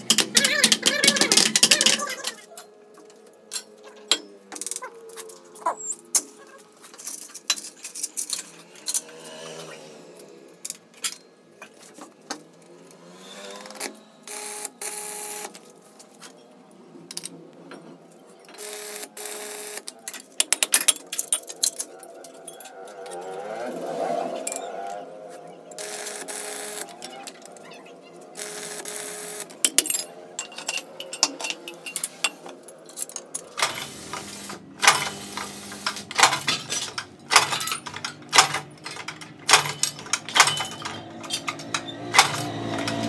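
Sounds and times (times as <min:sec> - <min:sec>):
steel plates clinking together: 0:29.6 - 0:43.0.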